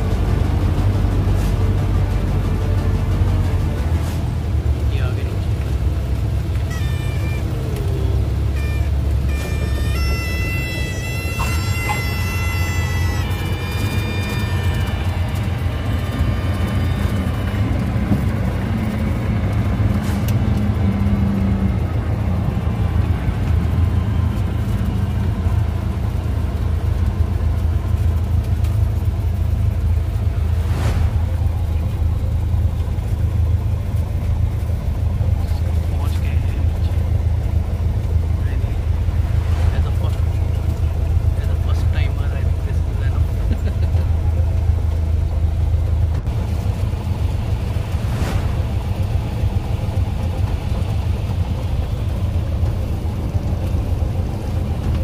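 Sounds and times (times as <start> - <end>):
light aircraft engine droning: 0.0 - 55.0.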